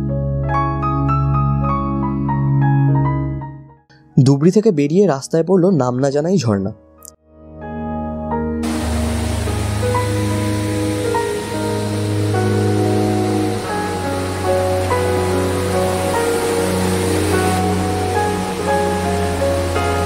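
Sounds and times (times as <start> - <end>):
slow background music: 0.0 - 20.0
stream and waterfall rushing: 8.6 - 20.0.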